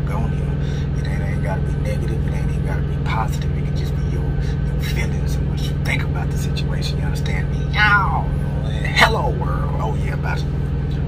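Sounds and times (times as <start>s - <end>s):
man talking: 0.0s - 11.0s
vehicle engine idling: 0.0s - 11.0s.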